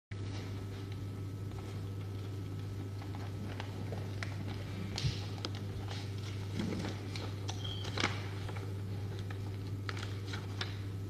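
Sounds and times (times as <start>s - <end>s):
steady low hum: 0.1s - 11.0s.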